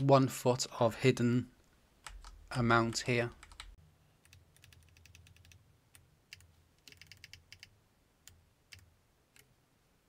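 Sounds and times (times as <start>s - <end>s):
computer keyboard typing: 2.0s - 2.4s, 3.3s - 9.5s.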